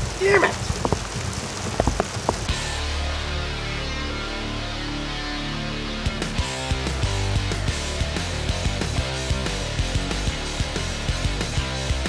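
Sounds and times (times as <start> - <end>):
steady rain falling: 0.0 - 12.0
music with steady low note: 2.5 - 12.0.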